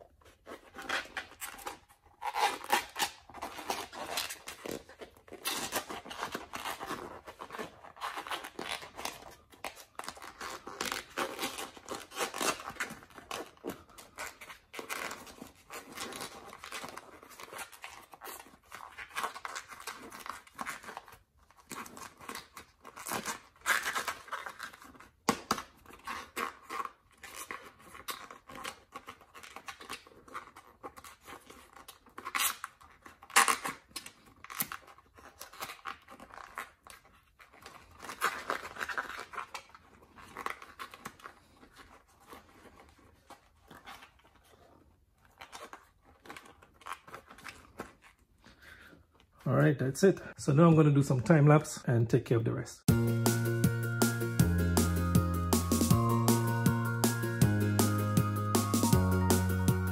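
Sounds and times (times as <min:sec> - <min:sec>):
rubber and foam rubbing and scraping: 0:00.0 - 0:49.4.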